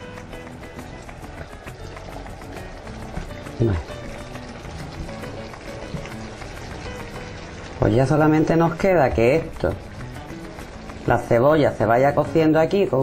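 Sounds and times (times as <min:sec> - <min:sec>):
background music: 0:00.0 - 0:13.0
chicken frying in oil: 0:00.0 - 0:13.0.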